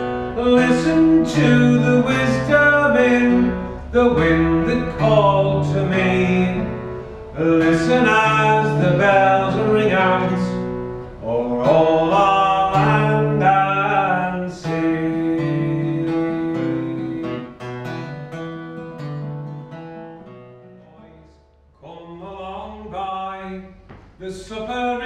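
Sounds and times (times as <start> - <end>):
acoustic guitar strummed and picked: 0.0 - 25.0.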